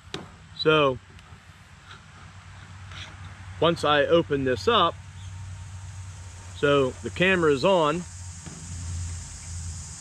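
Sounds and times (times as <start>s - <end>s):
insects droning: 0.0s - 10.0s
low steady rumble: 0.0s - 10.0s.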